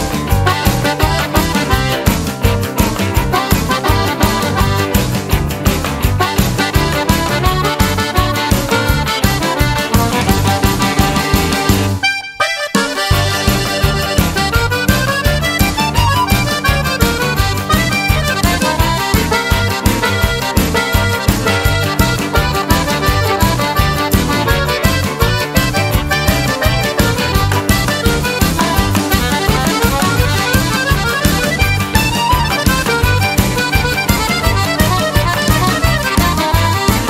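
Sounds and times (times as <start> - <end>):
accordion lead melody: 0.0 - 37.0
drums beating: 0.0 - 37.0
rhythm and blues band: 0.0 - 37.0.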